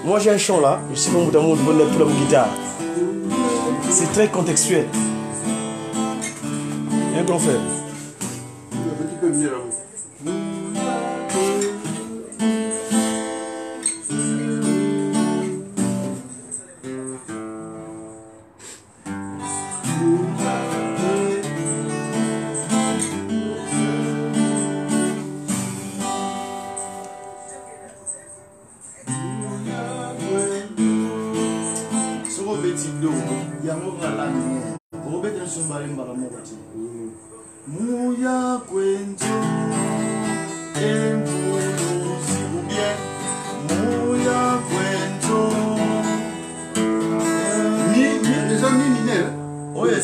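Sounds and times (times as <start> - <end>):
two acoustic guitars playing: 0.0 - 50.0.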